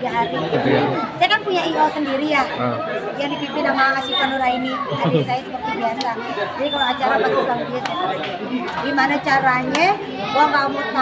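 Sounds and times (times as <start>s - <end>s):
overlapping chatter: 0.0s - 11.0s.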